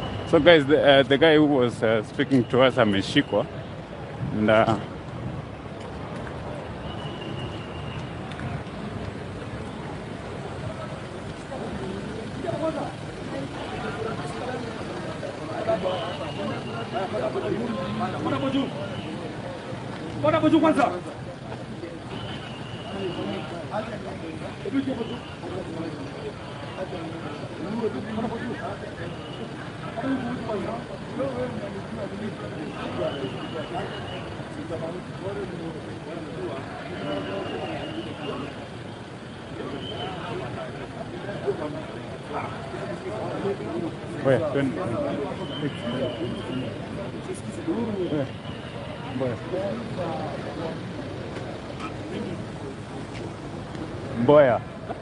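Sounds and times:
city street noise: 0.0s - 55.0s
people talking: 0.0s - 55.0s.

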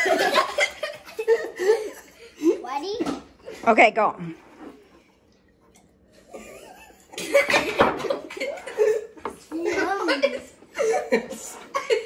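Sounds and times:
boy coughing and laughing: 6.3s - 12.0s.

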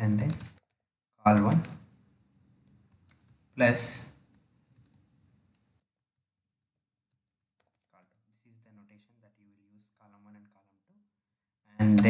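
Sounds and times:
faint keyboard typing: 0.0s - 2.0s, 2.6s - 5.9s, 7.2s - 8.2s.

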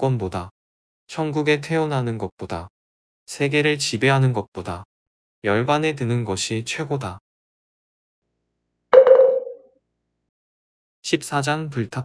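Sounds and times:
struck ringing tone: 9.0s - 9.6s.

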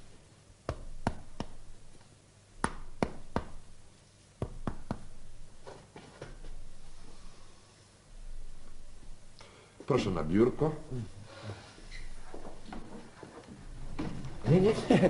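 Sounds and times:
fingers tapping on chest: 0.6s - 2.0s, 2.6s - 3.7s, 4.4s - 5.3s.

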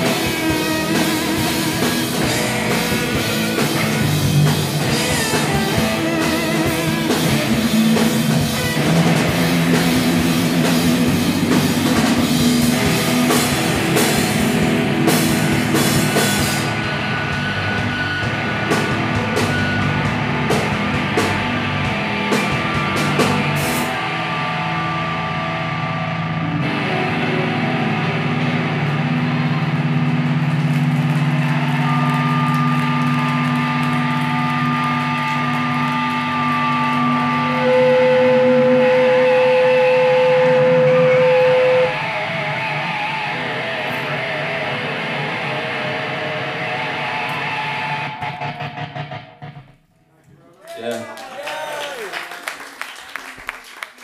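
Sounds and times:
electric guitar through amplifier: 0.0s - 50.0s
loud steady held tone: 37.4s - 42.9s.

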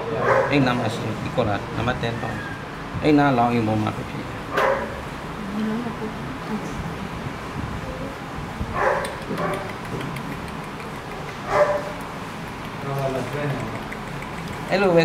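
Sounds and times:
dog barking: 0.2s - 0.6s, 4.5s - 5.0s, 8.8s - 9.7s, 11.5s - 12.0s.

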